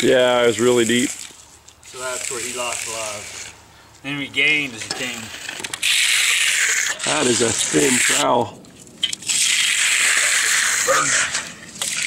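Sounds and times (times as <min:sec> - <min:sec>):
trowel scraping concrete: 0:01.9 - 0:03.6, 0:04.7 - 0:08.5, 0:09.1 - 0:12.0.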